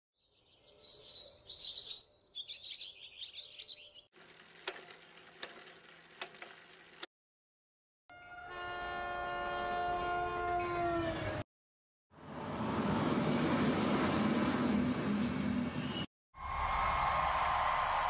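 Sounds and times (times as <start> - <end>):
bird chirping: 0.2 - 4.1.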